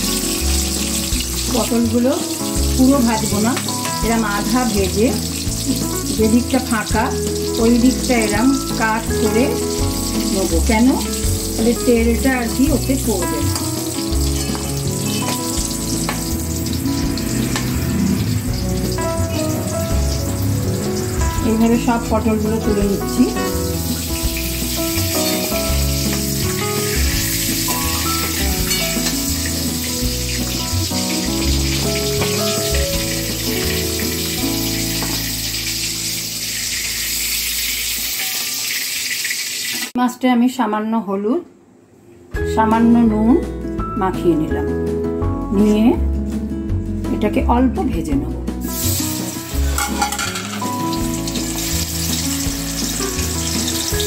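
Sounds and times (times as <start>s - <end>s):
background music: 0.0s - 38.2s, 42.3s - 54.0s
gourds sizzling in oil: 0.0s - 40.0s, 48.5s - 54.0s.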